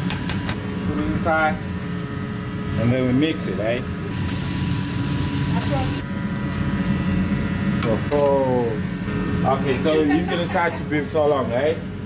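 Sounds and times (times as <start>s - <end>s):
food sizzling on griddle: 0.0s - 6.1s
extractor fan hum: 0.0s - 12.0s.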